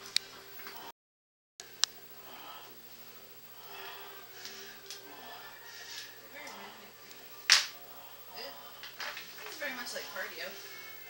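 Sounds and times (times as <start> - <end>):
faint television voices and music: 1.6 - 11.0
sharp snap: 7.5 - 7.8.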